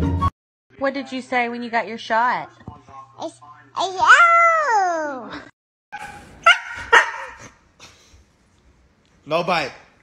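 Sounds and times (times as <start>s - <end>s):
dog barking: 6.0s - 7.6s.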